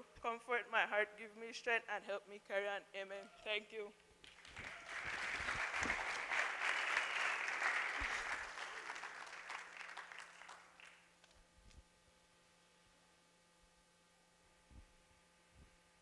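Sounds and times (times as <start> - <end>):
audience applauding: 4.2 - 11.1.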